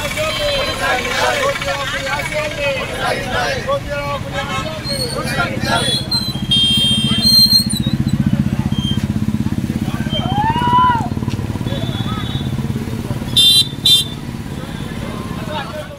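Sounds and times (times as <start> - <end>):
crowd voices: 0.0 - 15.9
vehicle engine idling: 0.0 - 15.9.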